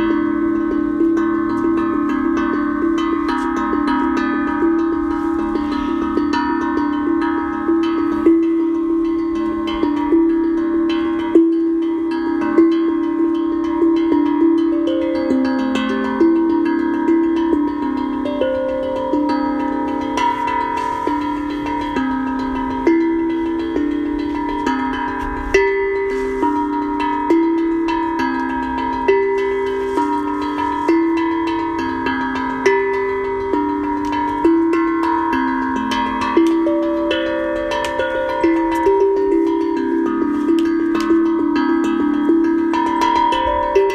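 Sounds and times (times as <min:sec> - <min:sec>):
tongue drum melody: 0:00.0 - 0:43.9.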